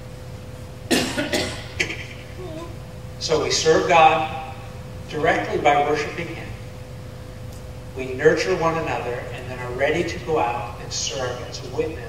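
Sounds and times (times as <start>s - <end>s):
faint steady hum: 0.0s - 12.0s
person coughing: 0.9s - 2.7s.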